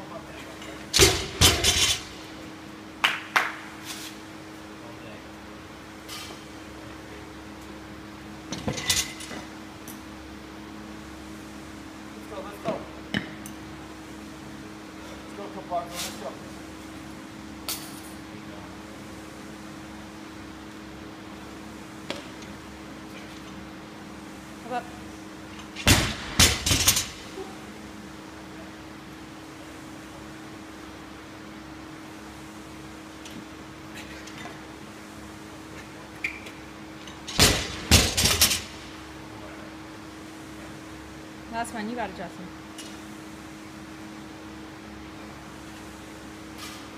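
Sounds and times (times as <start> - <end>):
steady low hum: 0.0 - 46.9
barbell dropped on concrete: 37.3 - 38.7.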